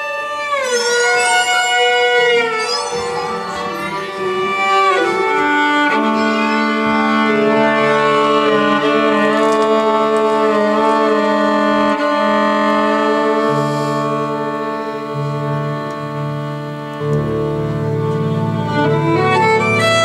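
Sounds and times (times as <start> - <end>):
violin bowed with vibrato: 0.0 - 20.0
steady drone: 0.6 - 15.0.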